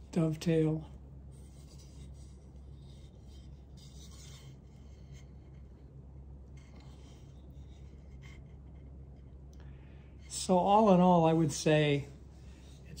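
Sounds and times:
hands rubbing wooden parts: 0:00.0 - 0:09.6
steady low hum: 0:00.0 - 0:13.0.

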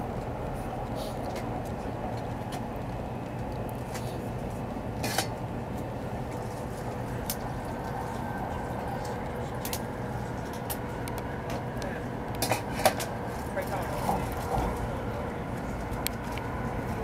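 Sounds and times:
train interior rumble and hum: 0:00.0 - 0:17.0.

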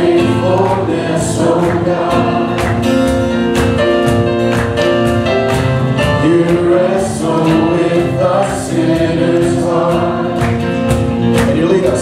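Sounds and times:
people singing: 0:00.0 - 0:03.4, 0:06.0 - 0:12.0
acoustic guitar: 0:00.0 - 0:12.0
congregation singing along: 0:00.0 - 0:12.0
drum beat: 0:00.0 - 0:12.0
keyboard: 0:00.0 - 0:12.0.

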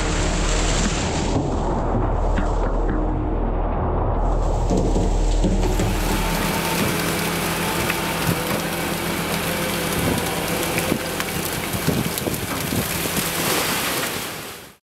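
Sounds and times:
fish thrashing and splashing: 0:04.4 - 0:14.6.

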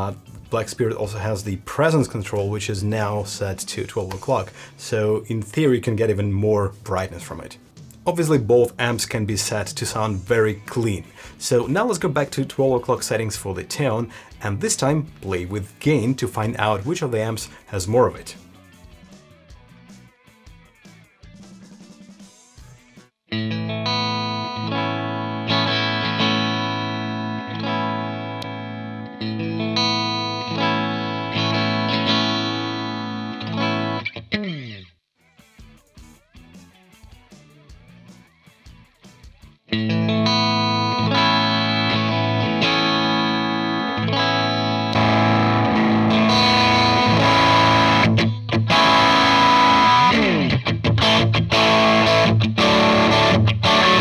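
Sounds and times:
overdriven electric guitar: 0:23.3 - 0:54.0.

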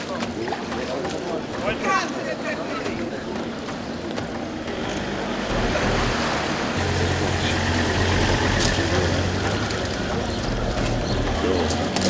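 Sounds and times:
outdoor noise: 0:00.0 - 0:12.0
engine humming: 0:04.6 - 0:12.0.

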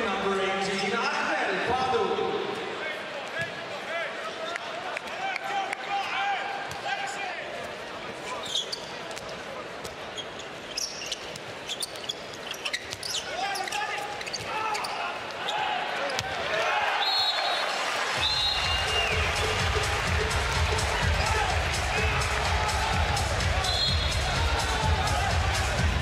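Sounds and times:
shoes squeaking: 0:08.2 - 0:16.3
crowd din: 0:17.8 - 0:26.0
arena music with deep bass: 0:18.6 - 0:26.0.

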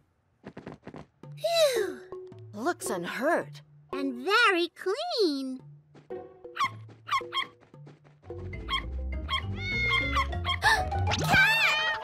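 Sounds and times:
cartoon background music: 0:01.2 - 0:12.0.

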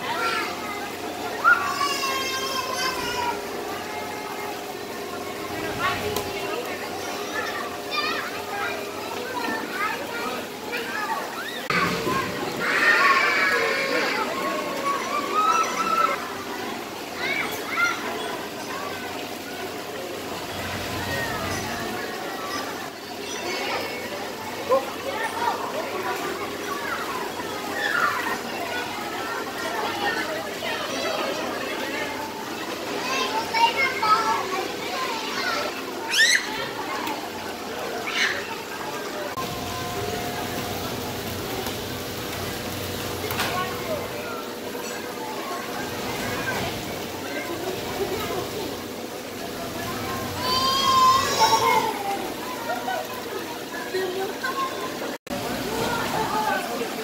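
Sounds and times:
children chattering and calling out: 0:00.0 - 0:57.0
splashing running water: 0:00.0 - 0:57.0
child squealing: 0:36.0 - 0:36.6, 0:50.4 - 0:52.2.

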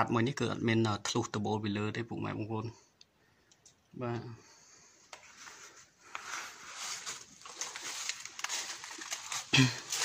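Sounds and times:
person speaking: 0:03.7 - 0:04.5.

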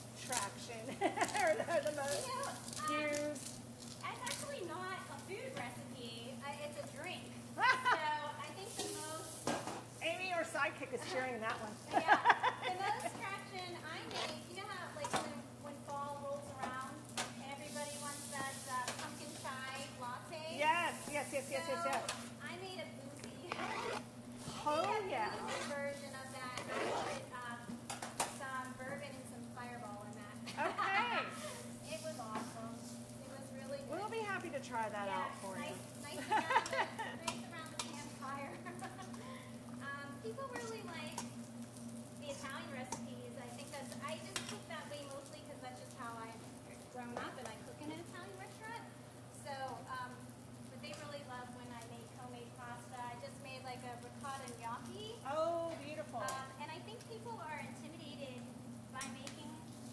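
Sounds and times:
vegetables sizzling in a pan: 0:00.0 - 0:11.0, 0:11.6 - 0:59.9
range hood fan hum: 0:00.0 - 0:59.9
utensil stirring in metal bowl: 0:14.0 - 0:14.4, 0:23.1 - 0:27.4.

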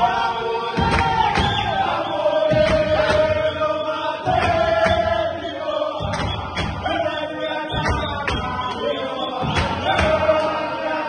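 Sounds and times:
sharp hits in steady beat: 0:00.0 - 0:08.7, 0:09.3 - 0:10.5
group singing a chant: 0:00.0 - 0:11.0.

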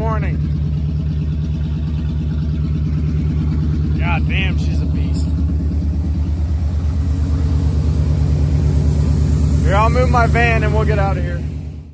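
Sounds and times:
loud fast exhaust pulse: 0:00.0 - 0:11.9
pickup truck engine running: 0:00.0 - 0:11.9.

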